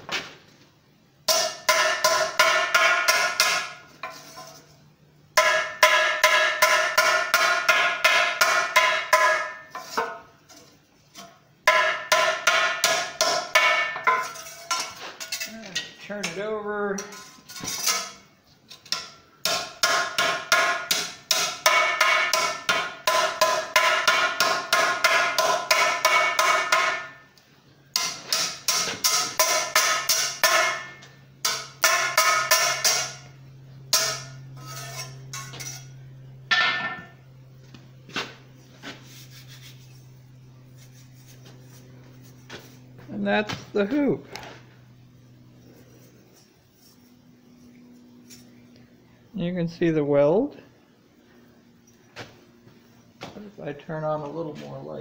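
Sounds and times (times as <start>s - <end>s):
hammer striking steel hoop: 1.3s - 3.8s, 5.4s - 10.2s, 11.2s - 15.4s, 18.9s - 27.3s, 27.9s - 35.9s, 36.5s - 37.2s.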